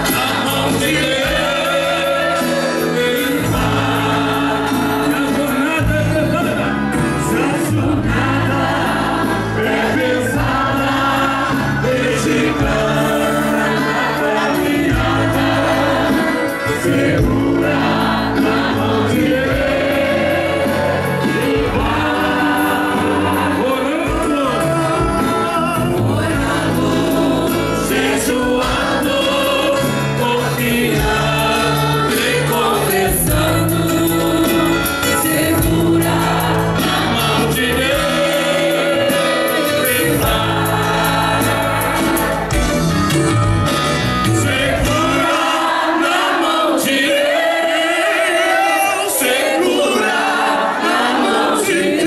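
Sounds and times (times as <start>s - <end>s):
steady bass line: 0.0s - 45.5s
amplified musical accompaniment: 0.0s - 52.0s
crowd singing a hymn: 0.0s - 52.0s.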